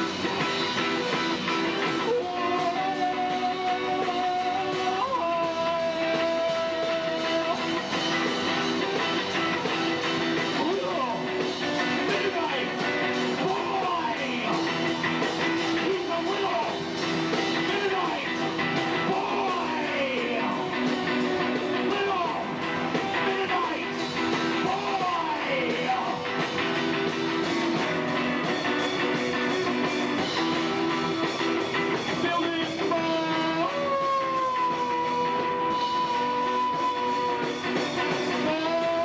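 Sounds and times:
electric guitar: 0.0 - 39.0
steady drumbeat: 0.0 - 39.0.

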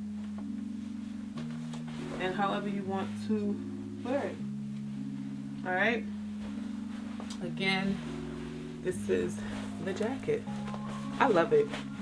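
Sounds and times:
soft low chords music: 0.0 - 12.0.

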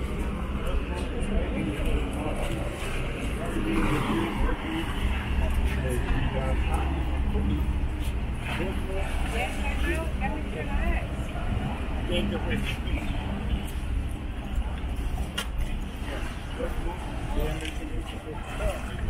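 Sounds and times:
people talking: 0.0 - 19.0
steady low rumble: 0.0 - 19.0.

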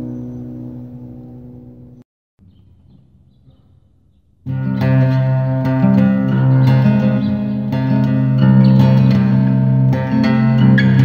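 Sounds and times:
strummed acoustic guitar chord: 4.5 - 11.0.

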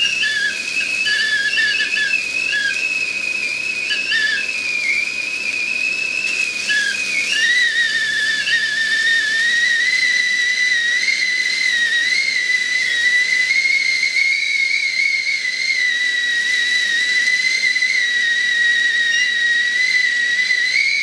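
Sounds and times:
kettle whistling: 0.0 - 21.0
steam hissing: 0.0 - 21.0.

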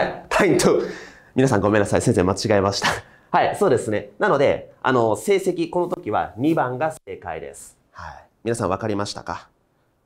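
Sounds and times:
man talking: 0.0 - 9.6.

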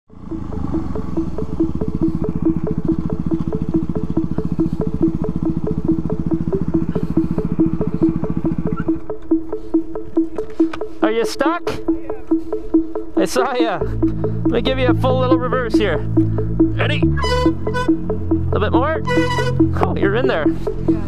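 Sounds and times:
background music with beat: 0.1 - 21.0
dirt bike engine running: 0.1 - 21.0.

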